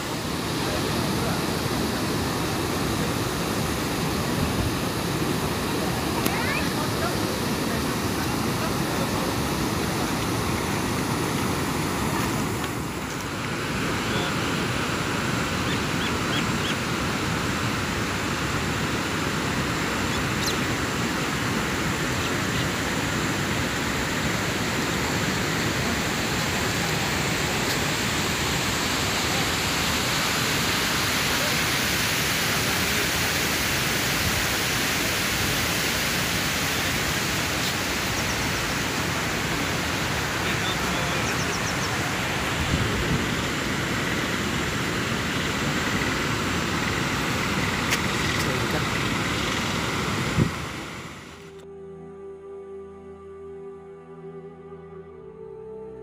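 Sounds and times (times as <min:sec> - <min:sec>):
wind buffeting microphone: 0:42.1 - 0:44.0, 0:48.9 - 0:50.9.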